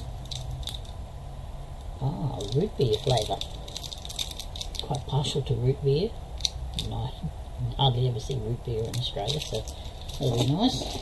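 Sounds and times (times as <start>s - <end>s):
wrapper crinkling: 0.0s - 1.0s, 2.3s - 5.4s, 6.4s - 7.0s, 8.8s - 11.0s
low hum: 0.0s - 11.0s.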